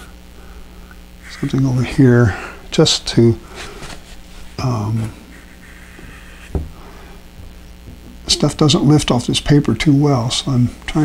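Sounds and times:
low electrical hum: 0.0s - 11.0s
short low thump: 6.0s - 6.8s.

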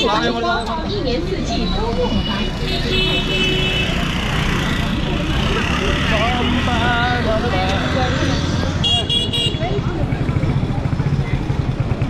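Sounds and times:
motorcycles and scooters passing: 0.0s - 12.0s
traffic rumble: 0.0s - 12.0s
voices: 0.0s - 12.0s.

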